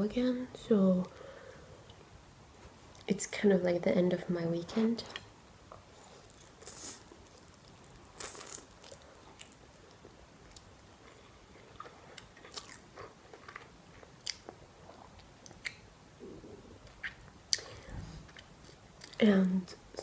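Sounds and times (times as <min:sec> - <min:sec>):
chewing: 0:06.2 - 0:15.8.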